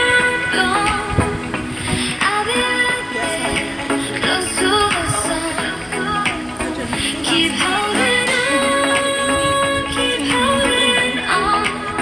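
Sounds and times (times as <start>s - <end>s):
instrumental song music: 0.0s - 12.0s.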